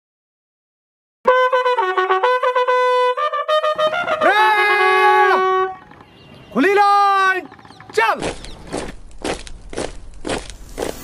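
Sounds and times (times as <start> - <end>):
bugle call: 1.3 - 8.0.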